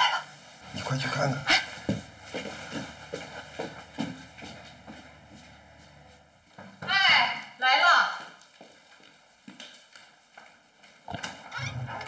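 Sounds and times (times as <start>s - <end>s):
footsteps on hard floor: 1.5s - 7.6s, 8.2s - 11.1s.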